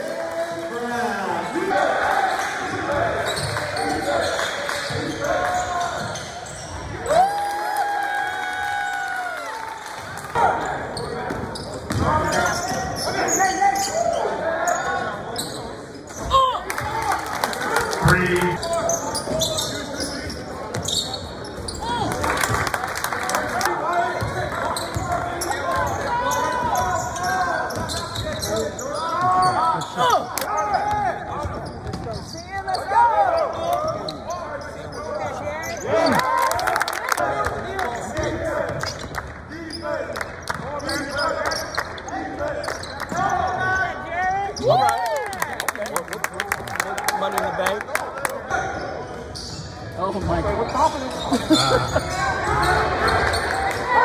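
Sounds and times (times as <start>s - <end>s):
voices of players and spectators: 0.0s - 54.0s.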